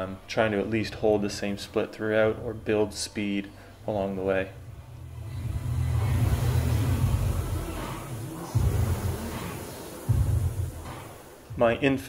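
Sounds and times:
background music: 0.0s - 12.0s
rowing machine flywheel whooshing: 4.6s - 11.5s.

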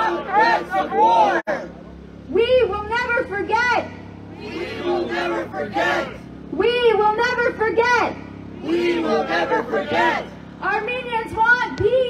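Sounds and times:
woman chanting through megaphone: 2.3s - 12.0s.

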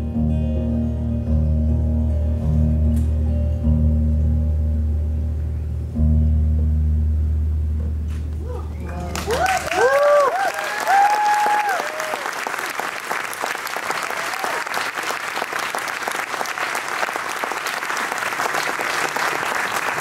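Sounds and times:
audience applauding: 8.8s - 20.0s
cheers: 8.9s - 13.2s, 13.8s - 15.2s.

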